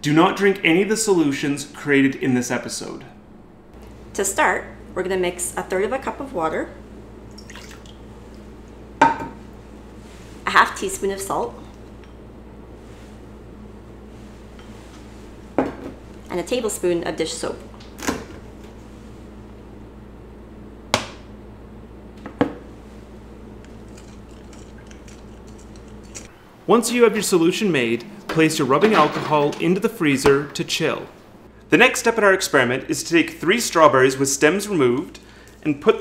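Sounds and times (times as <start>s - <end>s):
steady low hum: 0.0s - 36.0s
water trickling into glass bowl: 7.3s - 8.0s
kitchen utensils knocking: 28.2s - 30.7s.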